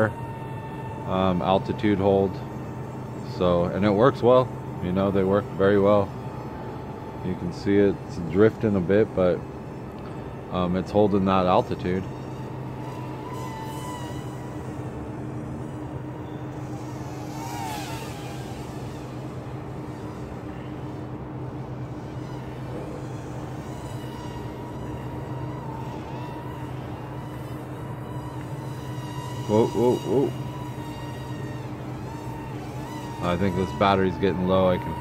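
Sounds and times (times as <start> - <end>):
quadcopter motors buzzing: 0.0 - 35.0.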